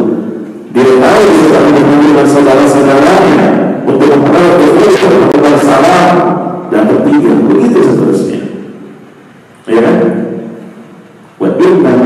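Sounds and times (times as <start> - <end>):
man speaking into headset microphone: 0.0 - 8.7, 9.6 - 10.5, 11.4 - 12.0.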